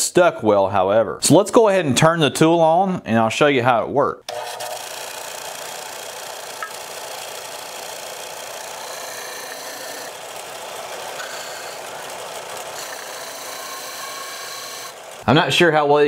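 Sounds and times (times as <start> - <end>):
sander motor running: 4.3 - 15.4
sanding disc on wood: 4.8 - 15.3.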